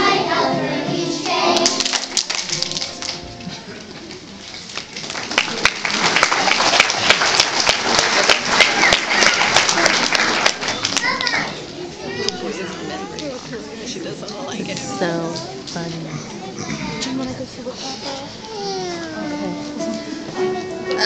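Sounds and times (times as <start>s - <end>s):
people clapping: 1.2s - 11.6s
adult and child voices chattering: 8.6s - 21.0s.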